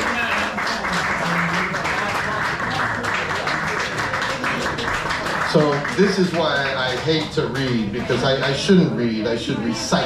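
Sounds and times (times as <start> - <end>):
audience applause: 0.0 - 8.5
crowd voices: 0.0 - 10.0.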